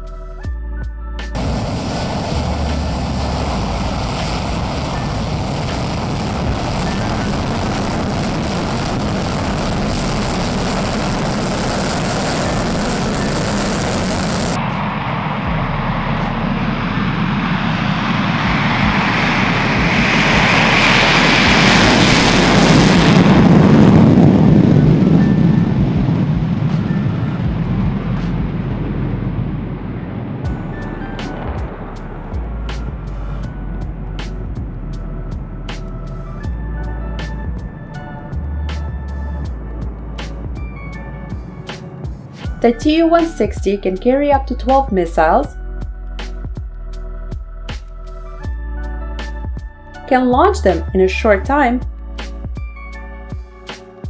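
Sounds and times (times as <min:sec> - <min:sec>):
jet engines roaring: 0:01.4 - 0:45.3.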